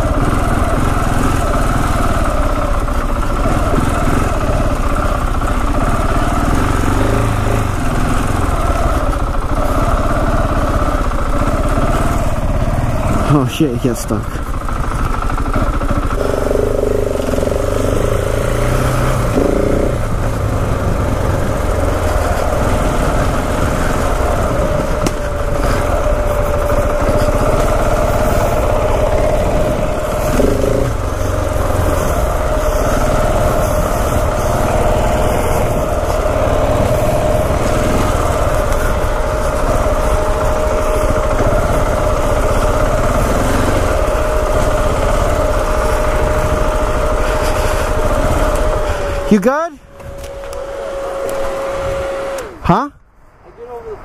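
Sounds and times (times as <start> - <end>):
motorcycle engine running: 0.0 - 52.9
wind rushing over microphone: 51.1 - 54.0.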